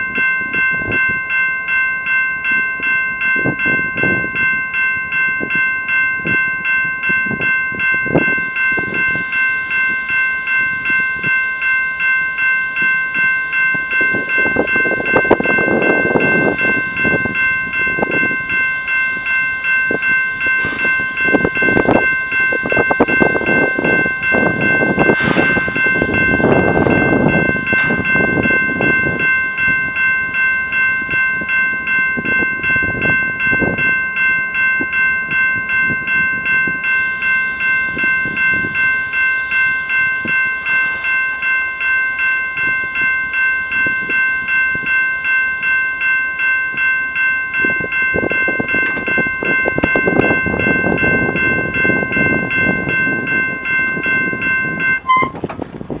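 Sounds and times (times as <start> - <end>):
locomotive rumble: 0.0 - 56.0
warning bell ringing: 0.0 - 56.0.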